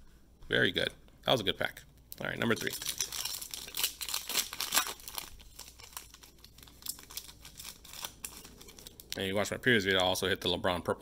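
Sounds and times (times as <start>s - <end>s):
foil wrapper tearing and crinkling: 2.5s - 9.4s.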